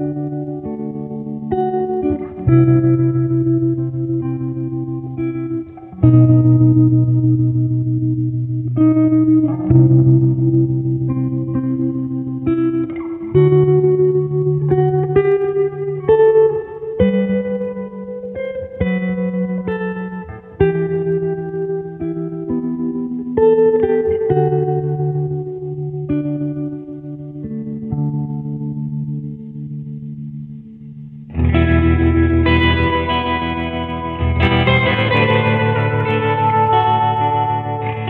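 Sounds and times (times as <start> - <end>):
plucked guitar notes and chords: 0.0 - 38.0.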